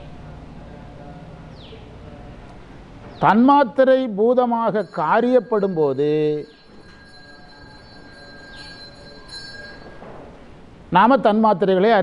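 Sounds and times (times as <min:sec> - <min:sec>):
low hum of held voice: 0:00.0 - 0:12.0
thin steady high tones: 0:03.5 - 0:10.7
man lecturing: 0:10.9 - 0:12.0.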